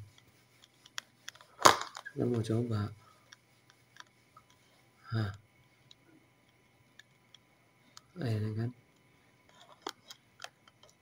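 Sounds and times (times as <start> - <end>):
faint handling clicks: 0.1 - 2.5.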